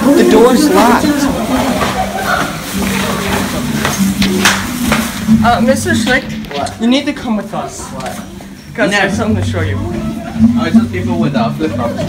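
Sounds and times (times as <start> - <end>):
young voices chattering: 0.0 - 4.2, 6.4 - 12.0.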